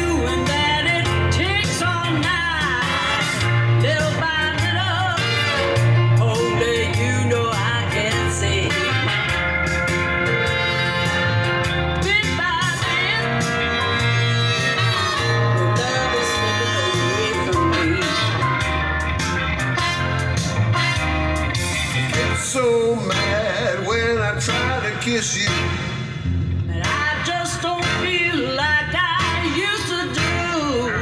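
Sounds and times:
blues song through car speakers: 0:00.0 - 0:31.0.

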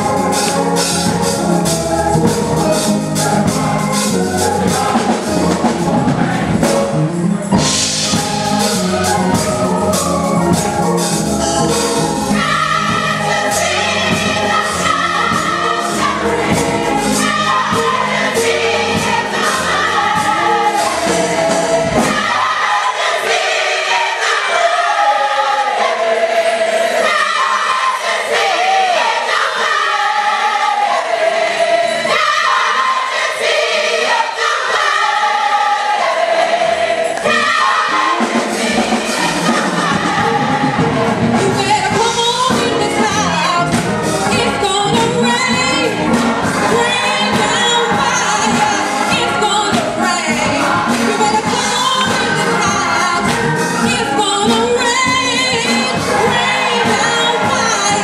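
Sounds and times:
gospel choir singing: 0:00.0 - 0:58.0
woman singing lead: 0:41.3 - 0:58.0.

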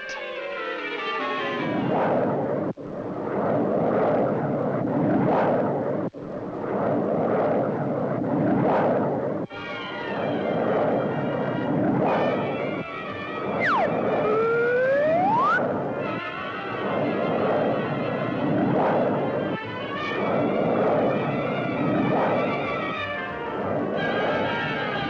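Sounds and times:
whistle-like sliding glide: 0:01.0 - 0:25.0.

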